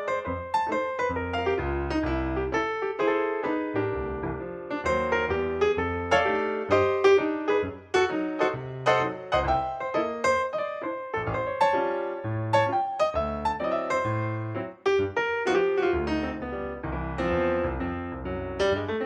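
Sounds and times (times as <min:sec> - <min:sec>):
piano music: 0:00.0 - 0:19.0.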